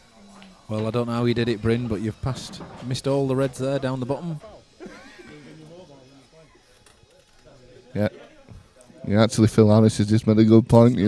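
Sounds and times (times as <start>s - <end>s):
faint background talk: 0.0s - 11.0s.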